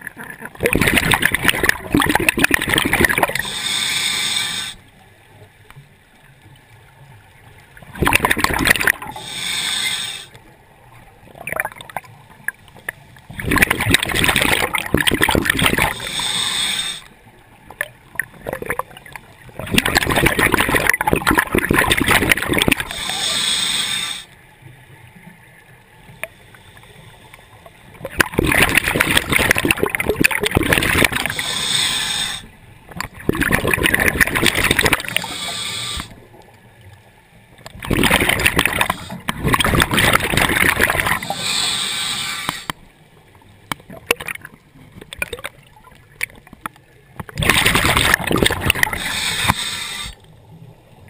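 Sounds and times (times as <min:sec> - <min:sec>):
exhaled bubbles crackling: 0:00.0 - 0:04.7, 0:07.8 - 0:24.2, 0:27.9 - 0:42.8, 0:43.6 - 0:50.8
regulator air hiss: 0:03.4 - 0:04.8, 0:09.1 - 0:10.4, 0:15.9 - 0:17.1, 0:22.8 - 0:24.4, 0:31.2 - 0:32.5, 0:35.1 - 0:36.2, 0:41.2 - 0:42.8, 0:48.9 - 0:50.2.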